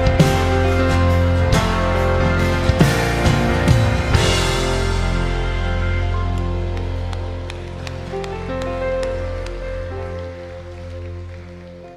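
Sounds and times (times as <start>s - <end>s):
worship band sustained chords: 0.0s - 11.9s.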